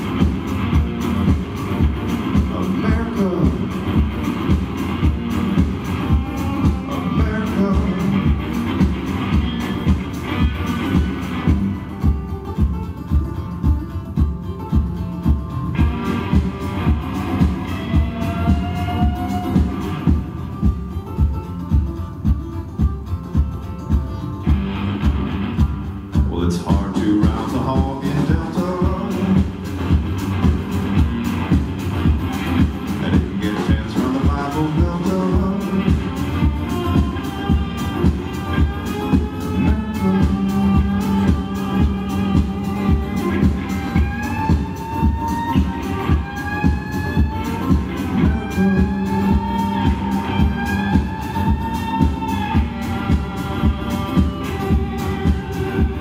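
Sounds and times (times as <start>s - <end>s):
acoustic guitar strumming: 0.0s - 56.0s
drum kit beat: 0.0s - 56.0s.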